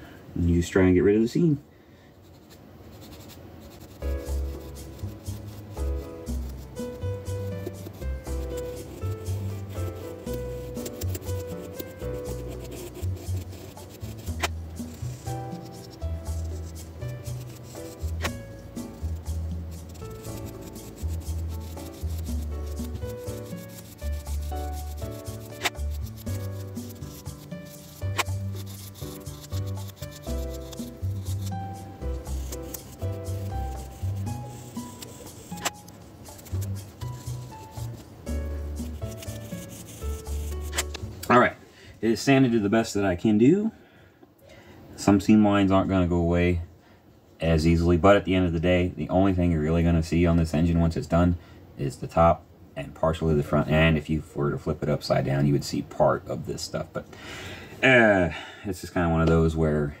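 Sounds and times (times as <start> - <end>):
sanding stick rubbing plastic: 2.2 - 41.1
background music: 3.8 - 41.6.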